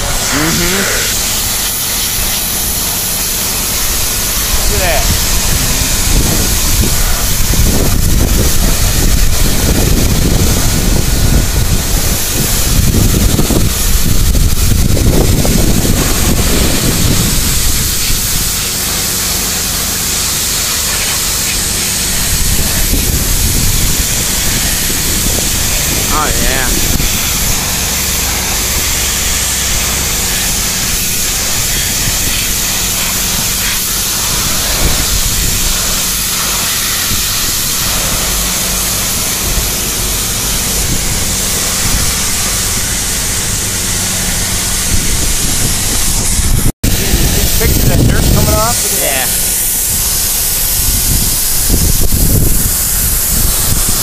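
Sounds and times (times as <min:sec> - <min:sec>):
pressure washer spraying water: 0:00.0 - 0:54.0.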